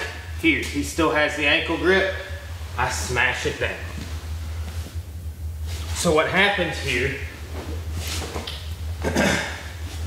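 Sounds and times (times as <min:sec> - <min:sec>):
steady low hum: 0:00.0 - 0:10.0
cloth rustling on foam mats: 0:07.3 - 0:08.6.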